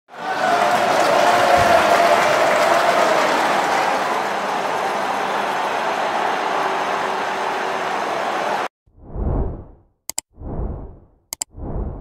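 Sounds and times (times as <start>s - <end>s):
large crowd noise: 0.1s - 8.7s.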